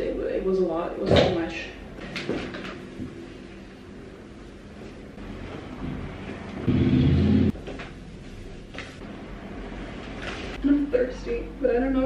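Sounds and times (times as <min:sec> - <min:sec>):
loud low rumble: 0:05.2 - 0:07.6.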